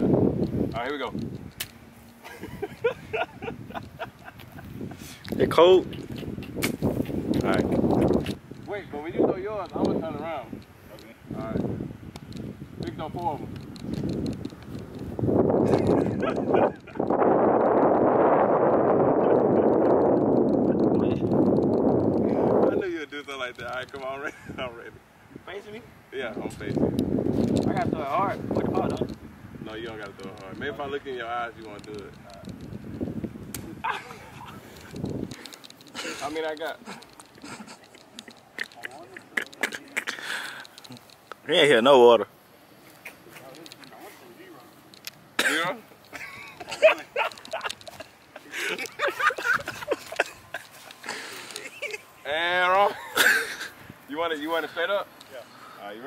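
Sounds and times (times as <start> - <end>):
wind buffeting microphone: 0.0 - 40.0, 46.0 - 51.1
men talking: 0.6 - 1.3, 2.2 - 11.9, 12.7 - 13.6, 15.4 - 17.4, 20.6 - 21.6, 22.2 - 32.6, 33.6 - 56.0
men laughing: 2.2 - 8.0, 15.5 - 17.5, 19.0 - 20.0, 24.0 - 25.0, 33.6 - 35.0, 35.8 - 41.0, 45.4 - 54.9.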